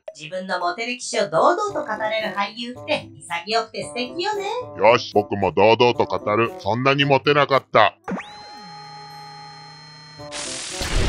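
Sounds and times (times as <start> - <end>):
sci-fi laser sound effect: 10.3 - 11.0.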